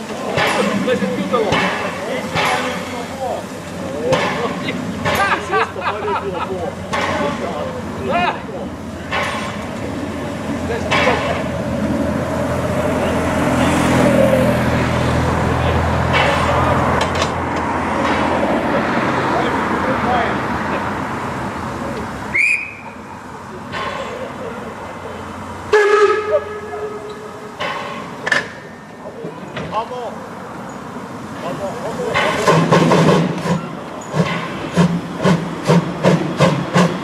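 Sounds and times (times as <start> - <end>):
steam locomotive hiss and rumble: 0.0 - 37.0
steam whistle toot: 22.3 - 23.0, 25.7 - 27.5.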